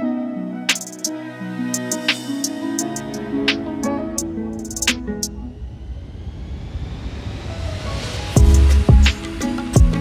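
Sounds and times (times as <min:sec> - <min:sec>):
musical notes: 0:00.0 - 0:05.6
rising whoosh of noise: 0:04.9 - 0:09.7
low rumble: 0:05.3 - 0:09.1.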